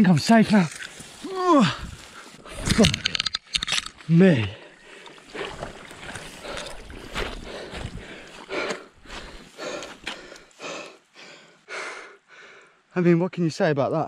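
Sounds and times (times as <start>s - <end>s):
man panting hard: 4.6s - 12.8s.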